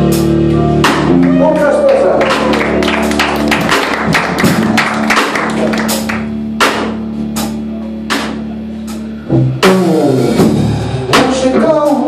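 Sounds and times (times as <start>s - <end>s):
drum kit with cymbal strikes: 0.0s - 2.6s, 3.7s - 12.0s
held guitar and bass note: 0.0s - 12.0s.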